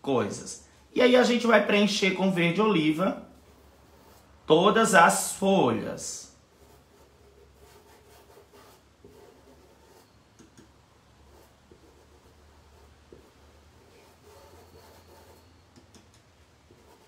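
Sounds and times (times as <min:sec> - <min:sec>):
paint brush scratching cloth: 0:03.4 - 0:05.4, 0:06.1 - 0:10.2, 0:11.2 - 0:15.9, 0:16.6 - 0:17.0.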